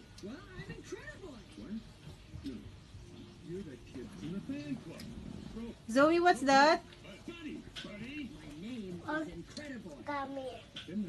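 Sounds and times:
animated film voices on television: 0.0 - 11.0.

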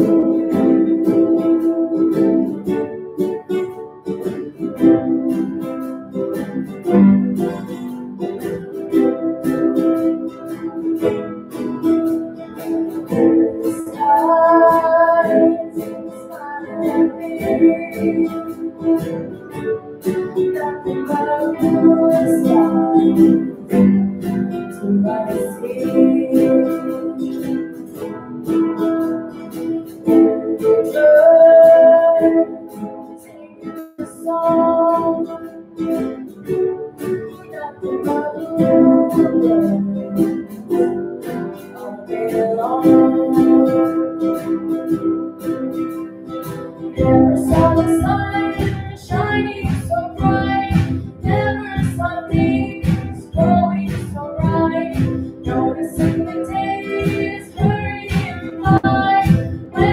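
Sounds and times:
person singing: 0.0 - 7.0, 8.4 - 28.6, 29.3 - 36.0, 37.3 - 45.2, 46.8 - 59.9
acoustic guitars playing: 0.0 - 59.9.

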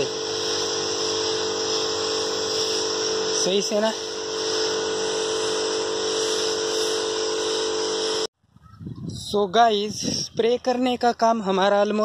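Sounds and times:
electric pump whining: 0.0 - 8.3
hiss of spray mist: 0.0 - 8.3.

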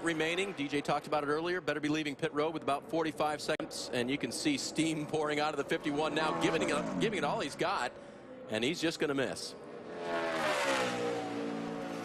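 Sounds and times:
race car engine at full throttle: 0.0 - 12.0.

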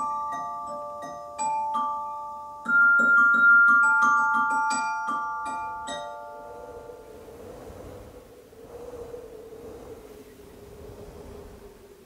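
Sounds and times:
glockenspiel notes ringing: 0.0 - 7.1
faint steady tone: 0.0 - 12.0
soft hiss: 4.8 - 12.0.

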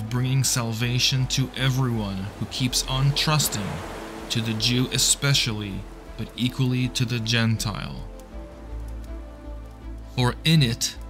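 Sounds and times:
soft background music: 0.0 - 11.0
faint hiss: 0.3 - 10.3.

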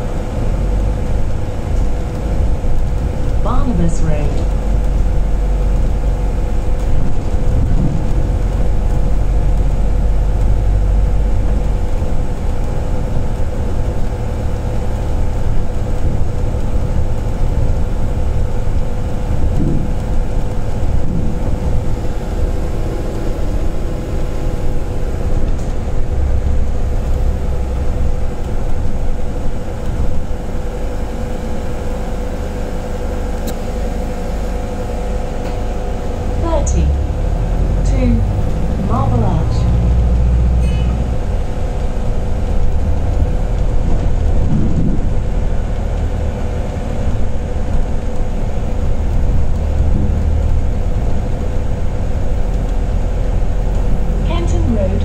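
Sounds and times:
bus drivetrain and road rumble: 0.0 - 55.0
constant hum: 0.0 - 55.0.

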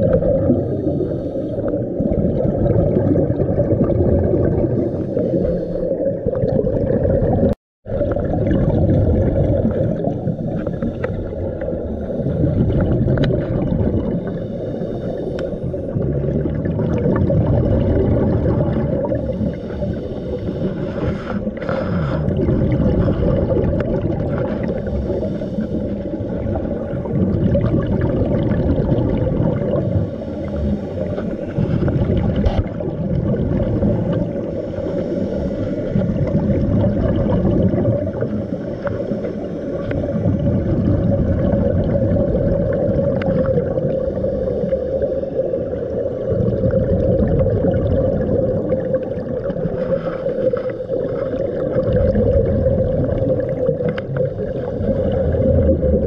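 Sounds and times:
exhaled bubbles underwater: 0.0 - 56.0
scuba regulator breathing: 0.6 - 2.0, 4.6 - 6.4, 10.0 - 13.0, 14.0 - 16.3, 19.0 - 27.2, 29.5 - 33.0, 33.6 - 36.3, 38.1 - 40.3, 43.1 - 46.0, 49.6 - 51.8, 53.3 - 55.7.

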